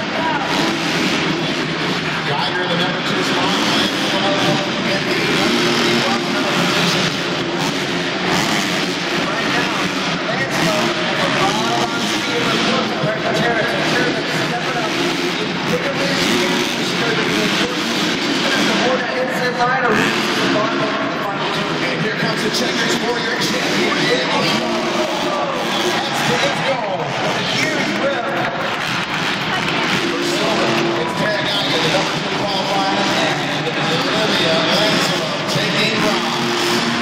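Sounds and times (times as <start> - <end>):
crowd noise: 0.0 - 37.0
echoing arena commentary: 0.0 - 37.0
motocross bike engines revving: 0.0 - 37.0.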